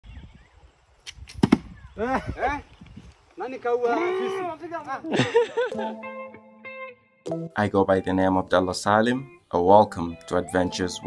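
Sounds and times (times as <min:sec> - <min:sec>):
bow snaps and arrow thwacks: 0:01.0 - 0:01.7.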